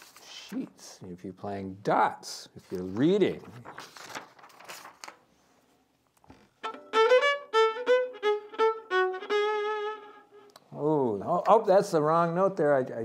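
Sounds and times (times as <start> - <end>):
paper rustling: 0.0 - 0.8, 2.6 - 5.8
violin played with bow: 6.6 - 10.6.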